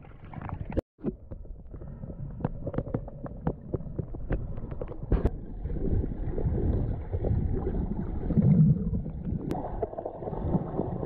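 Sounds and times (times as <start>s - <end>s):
sharp clicks underwater: 0.0s - 5.5s
rushing water and bubbles: 0.0s - 11.0s.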